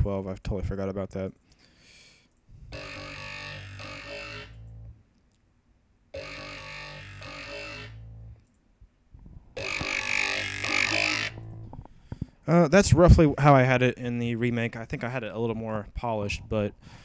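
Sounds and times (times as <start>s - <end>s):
steady low bass: 2.6s - 5.0s, 6.2s - 8.4s, 9.6s - 11.9s
dubstep growl bass: 2.8s - 4.6s, 6.2s - 8.3s, 9.6s - 11.7s.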